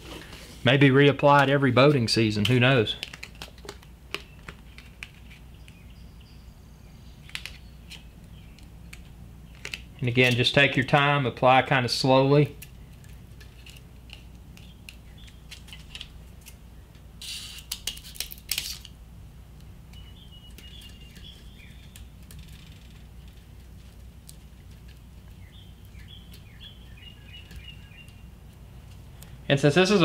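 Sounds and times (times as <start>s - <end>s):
steady low hum: 0.0s - 30.0s
grip tape rasping: 17.2s - 18.9s, 20.5s - 26.7s.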